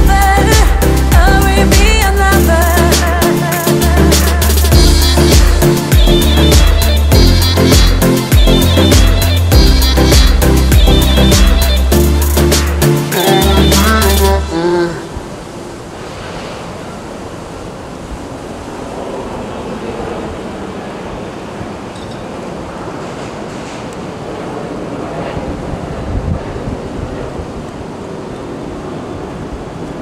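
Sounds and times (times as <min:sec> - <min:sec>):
wind on microphone: 0:14.8 - 0:30.0.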